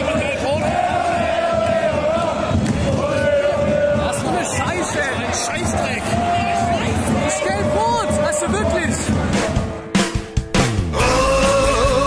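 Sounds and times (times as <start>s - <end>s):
crowd chanting in unison: 0.0s - 9.9s
stadium crowd noise: 0.0s - 12.0s.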